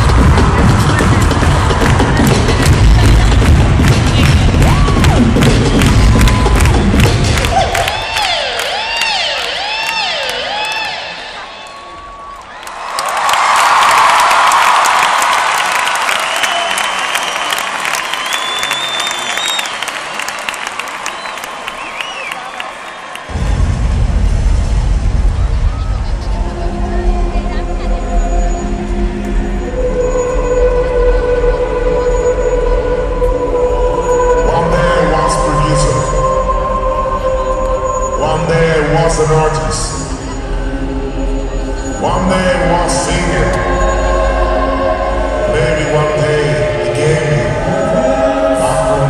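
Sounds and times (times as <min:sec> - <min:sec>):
electronic dance music bass beat: 0:00.0 - 0:11.4
crowd cheering: 0:00.0 - 0:24.3
wavering sliding synth tones: 0:26.6 - 0:49.0.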